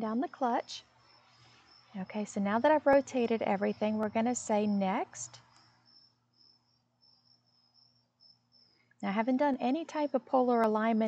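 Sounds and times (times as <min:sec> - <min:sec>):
faint low steady hum: 0:00.0 - 0:11.0
crickets chirping: 0:00.1 - 0:11.0.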